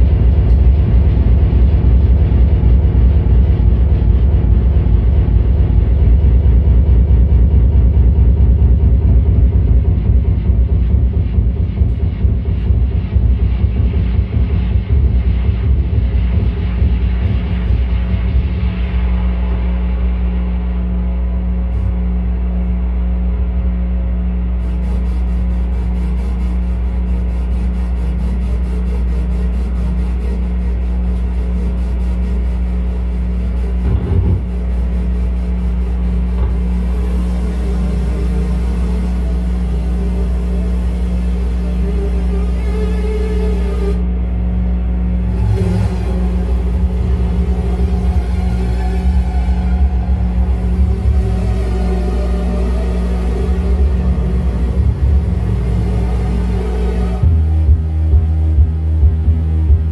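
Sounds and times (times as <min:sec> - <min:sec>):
synthesizer drone: 0:00.0 - 0:59.9.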